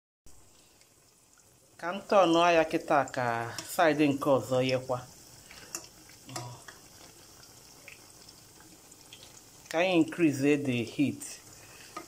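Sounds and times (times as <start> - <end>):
food sizzling in hot oil: 0.3 - 12.0.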